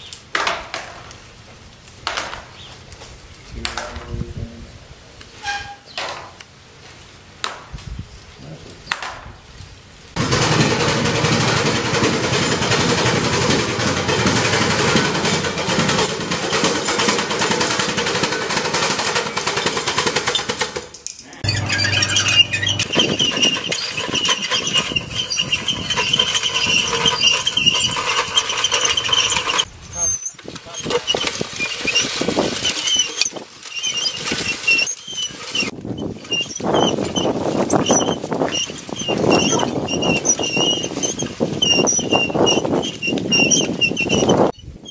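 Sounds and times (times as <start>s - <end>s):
hand seeder chain clattering: 10.4s - 44.9s
thin squeal: 21.4s - 32.2s.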